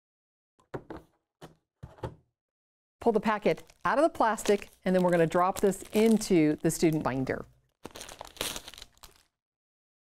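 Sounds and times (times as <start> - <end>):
plastic sleeve crinkling: 3.0 - 9.4.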